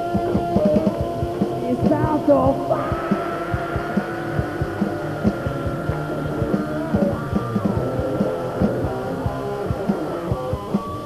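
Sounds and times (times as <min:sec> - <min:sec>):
bass drum beats: 0:00.0 - 0:11.0
live rock band: 0:00.0 - 0:11.0
sustained rising guitar note: 0:01.2 - 0:10.6.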